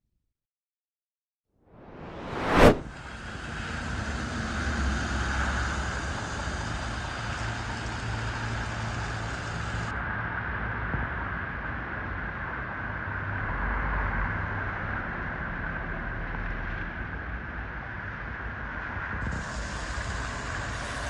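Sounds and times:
bus engine hum: 0:01.9 - 0:10.4, 0:18.7 - 0:21.0
tyre hiss on wet pavement: 0:02.8 - 0:10.0, 0:19.2 - 0:21.0.

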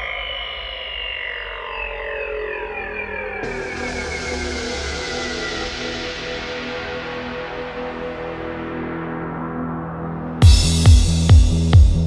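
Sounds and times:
synthesizer tones sliding downward: 0:00.0 - 0:10.4
low bass drone: 0:00.0 - 0:12.0.

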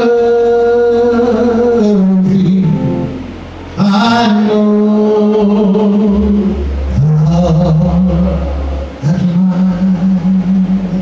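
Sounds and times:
low sustained bass note: 0:00.0 - 0:11.0
man singing long held notes: 0:00.0 - 0:11.0.

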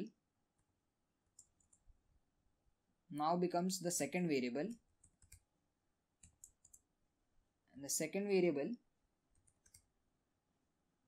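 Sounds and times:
computer keyboard keystrokes: 0:05.0 - 0:05.4, 0:06.2 - 0:06.8, 0:09.4 - 0:09.9.

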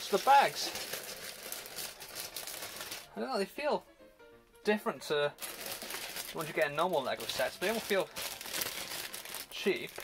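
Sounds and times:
plastic bags crinkling: 0:00.0 - 0:03.2, 0:05.4 - 0:10.0.

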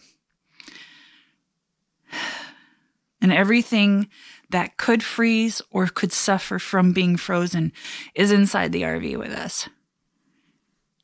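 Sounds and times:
person breathing in: 0:00.6 - 0:01.4.

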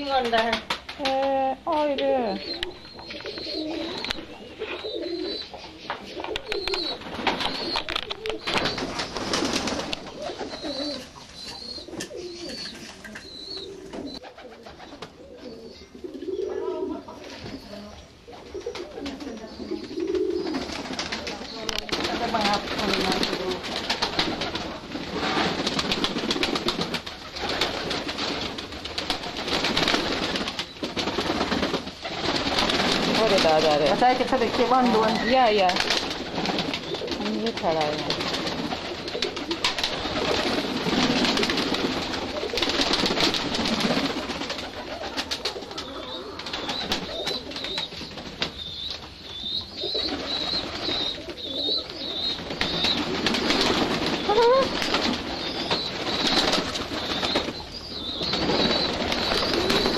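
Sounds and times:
pigeons cooing: 0:00.0 - 0:59.9.

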